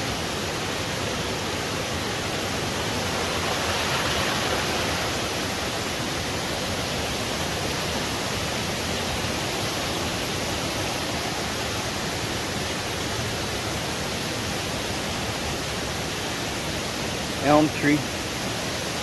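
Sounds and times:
creek water rushing over rocks: 0.0s - 19.0s.

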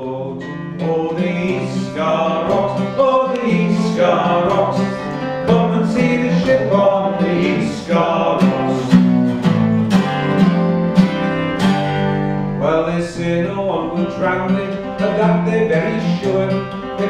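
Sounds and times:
acoustic guitar strumming chords: 0.0s - 17.0s.

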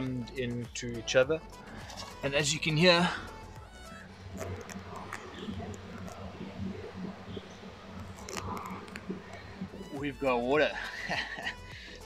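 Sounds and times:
water trickling into tank: 3.9s - 10.0s.

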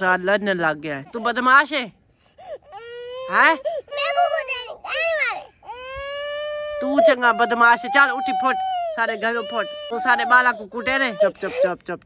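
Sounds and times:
toddler crying in high wails: 2.5s - 11.5s.

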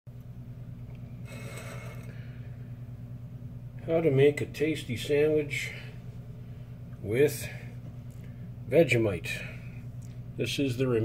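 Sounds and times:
low hum: 0.1s - 11.0s
plate scraping on table: 1.3s - 2.1s.

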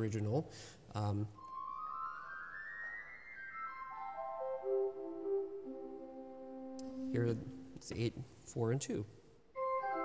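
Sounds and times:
pipe organ flute stop: 3.6s - 7.9s.

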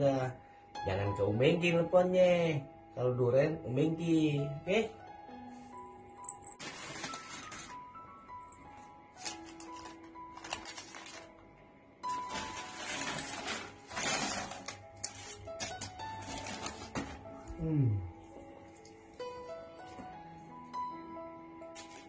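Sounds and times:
soft background music: 0.0s - 22.0s
paper wrapper crinkling: 6.4s - 8.0s, 9.1s - 17.4s, 21.7s - 22.0s.

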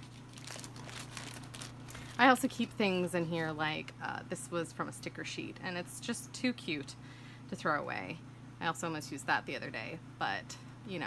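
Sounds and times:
paper sheets rustling: 0.0s - 2.4s.

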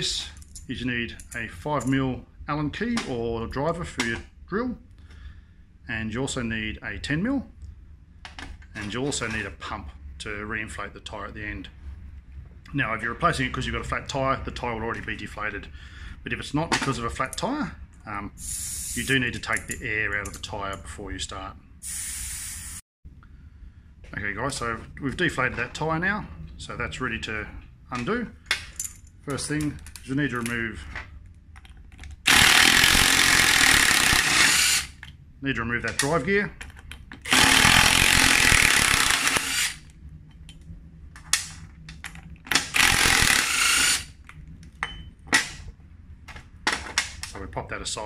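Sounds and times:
air hissing from tyre valve: 18.4s - 19.1s, 21.8s - 22.8s
cordless power driver spinning: 32.3s - 35.0s, 37.2s - 39.8s, 42.5s - 44.2s.

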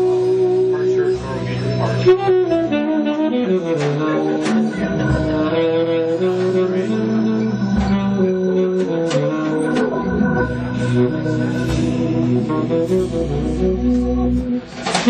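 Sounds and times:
bass line: 0.0s - 14.7s
electric guitar: 0.0s - 15.0s
saxophone: 0.0s - 15.0s
drum kit and cymbal hits: 7.7s - 13.6s.

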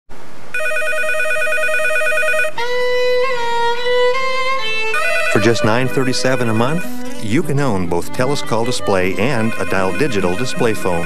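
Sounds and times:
telephone ringer warbling: 0.6s - 2.6s, 5.0s - 7.2s, 9.1s - 11.0s.

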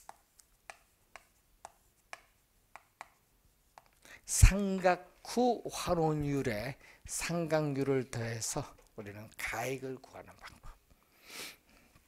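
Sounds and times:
chalk tapping on chalkboard: 0.0s - 4.0s.

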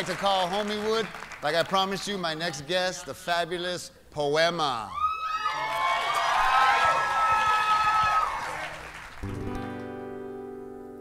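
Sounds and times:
audience cheering and shouting: 4.9s - 9.0s.

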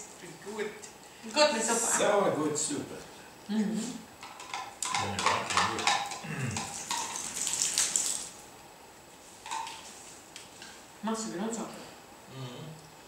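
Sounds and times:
spoons clicking against cups: 4.2s - 7.2s.

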